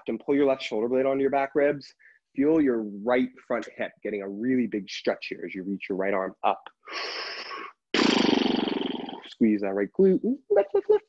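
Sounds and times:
person breathing hard: 0:06.8 - 0:07.8.

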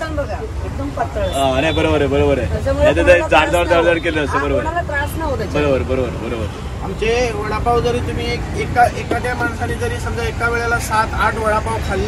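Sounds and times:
people talking: 0:00.0 - 0:12.0
street traffic rumble: 0:00.0 - 0:12.0.

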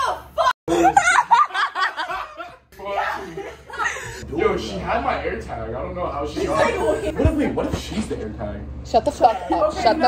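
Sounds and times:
young people laughing: 0:00.4 - 0:04.2.

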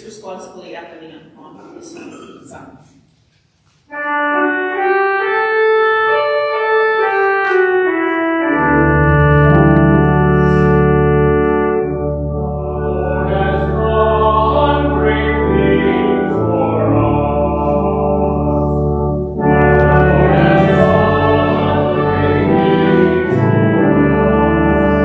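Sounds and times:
church organ chords: 0:03.9 - 0:25.0
deep organ bass pedal notes: 0:04.0 - 0:25.0.

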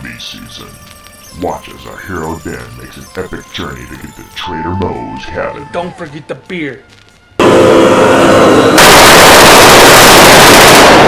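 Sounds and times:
distorted gunfire: 0:07.4 - 0:11.0.

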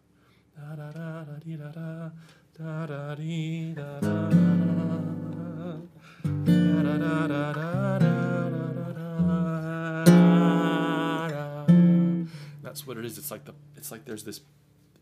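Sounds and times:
man singing: 0:00.6 - 0:12.3
acoustic guitar strumming: 0:03.8 - 0:13.8.

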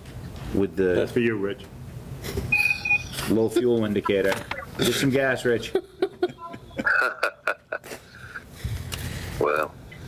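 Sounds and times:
man laughing: 0:03.3 - 0:08.4.

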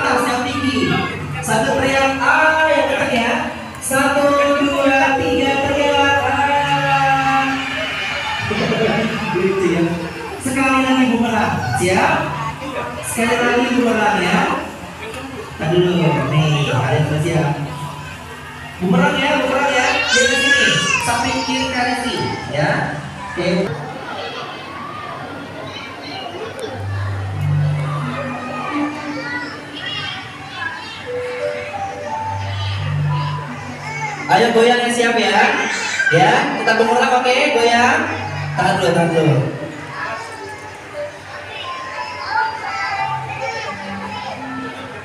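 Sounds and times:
children chattering and calling out: 0:00.0 - 0:45.0
indistinct voices: 0:00.0 - 0:45.0
background music: 0:31.0 - 0:45.0.

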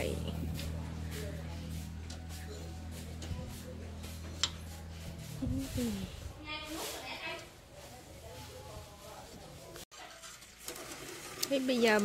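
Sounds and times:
steady low hum: 0:00.0 - 0:06.4
metal ladle stirring in a pot: 0:09.9 - 0:12.0.

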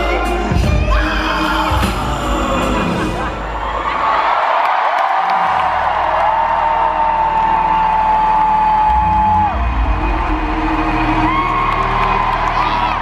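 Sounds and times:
heavy bass: 0:00.0 - 0:03.9, 0:05.4 - 0:13.0
crowd screaming and whooping: 0:00.0 - 0:13.0
live concert music: 0:00.0 - 0:13.0.

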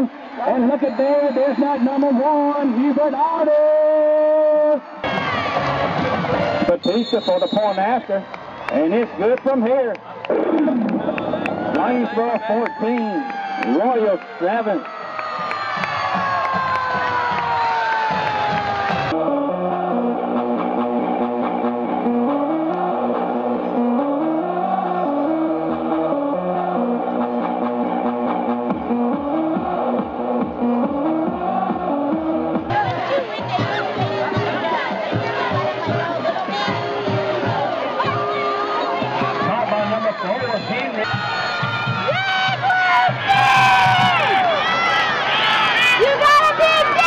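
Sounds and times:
crowd cheering: 0:00.0 - 0:47.0
marching band brass playing: 0:18.2 - 0:44.2.

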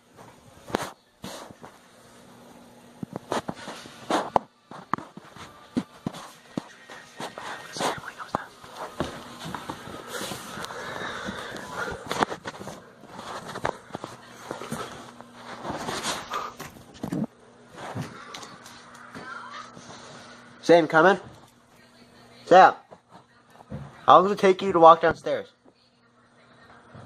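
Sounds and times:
footsteps: 0:00.1 - 0:20.5, 0:22.8 - 0:24.1.

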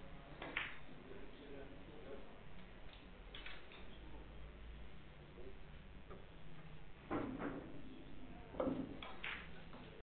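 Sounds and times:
billiard balls clicking: 0:00.4 - 0:00.8, 0:08.6 - 0:09.9.

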